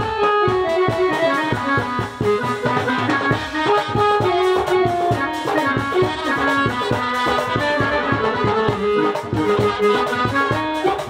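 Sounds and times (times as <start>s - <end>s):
melody of held notes: 0.0s - 11.0s
steady percussion beat: 0.0s - 11.0s.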